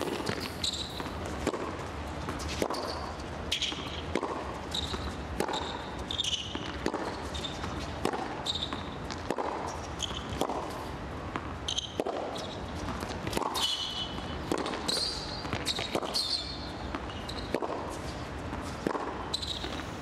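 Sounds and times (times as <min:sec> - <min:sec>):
shoes squeaking on court: 0:00.0 - 0:20.0
tennis ball bounces: 0:00.0 - 0:20.0.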